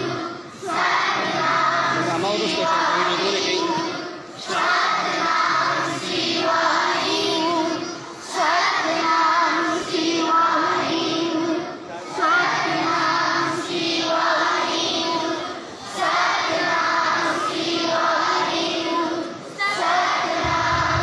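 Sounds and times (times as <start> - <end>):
children singing a hymn: 0.0 - 21.0.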